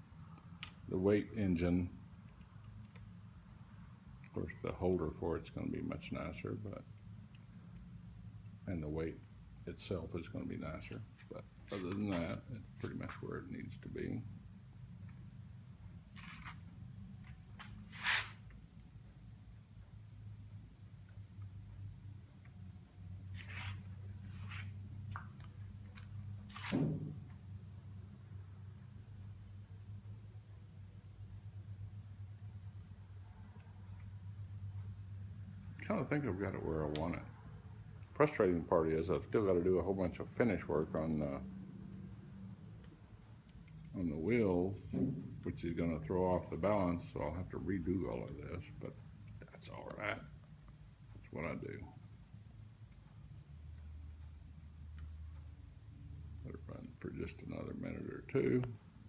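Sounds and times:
low room hum: 0.0s - 59.0s.

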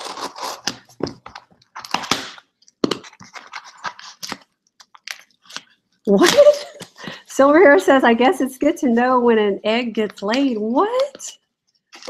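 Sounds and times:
packing rustling: 0.0s - 5.8s.

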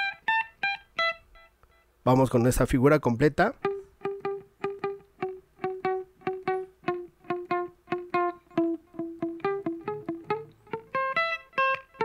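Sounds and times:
electric guitar picked notes: 0.0s - 1.9s, 3.6s - 12.0s.

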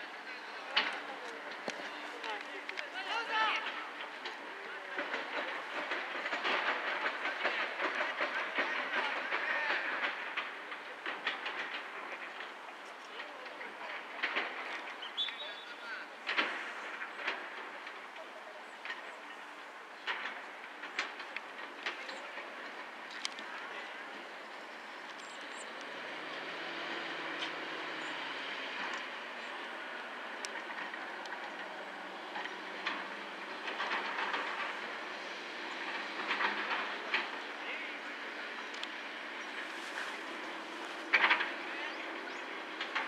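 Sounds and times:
distant vehicle rumble: 0.0s - 43.0s.

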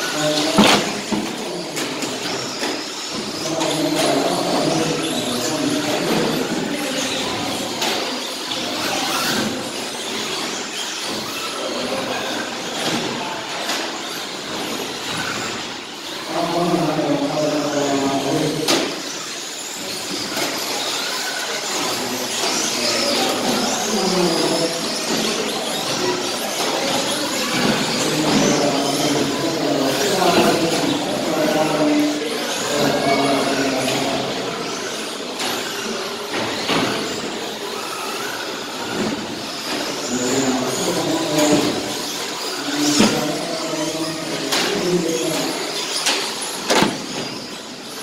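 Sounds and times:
people talking: 0.0s - 48.0s
clicks and knocks from toy cars: 12.6s - 16.2s, 40.7s - 47.9s.

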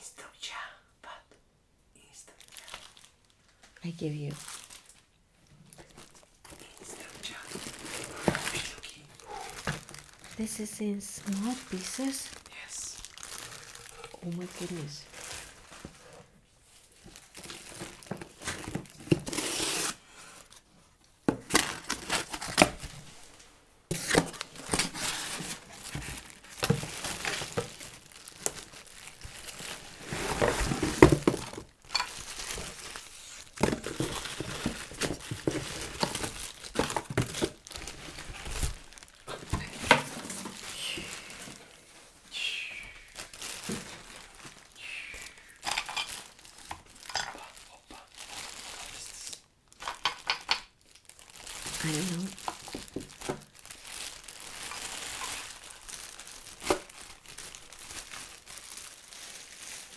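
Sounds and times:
plastic bags crinkling: 2.3s - 59.9s.

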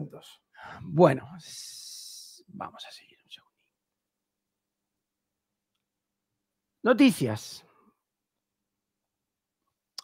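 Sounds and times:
man speaking: 0.0s - 3.3s, 6.8s - 7.7s.

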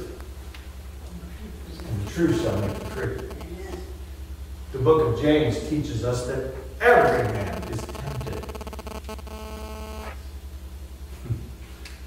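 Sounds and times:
electrical mains hum: 0.0s - 12.0s
flat steady tone: 1.8s - 3.9s, 7.0s - 10.2s.

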